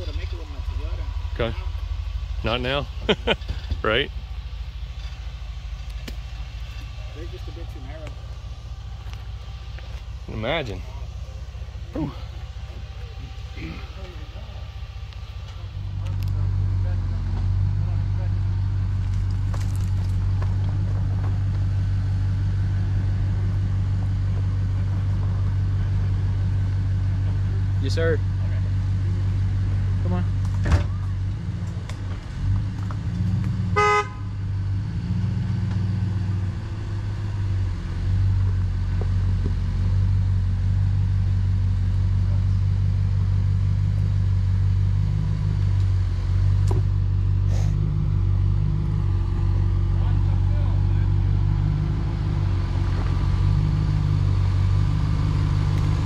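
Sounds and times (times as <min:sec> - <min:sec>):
truck engine running slowly: 0:00.0 - 0:56.0
horn toot: 0:33.7 - 0:34.4.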